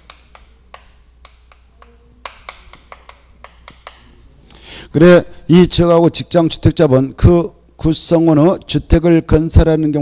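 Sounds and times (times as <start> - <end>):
chalk tapping on chalkboard: 0.0 - 4.2
low room hum: 0.0 - 10.0.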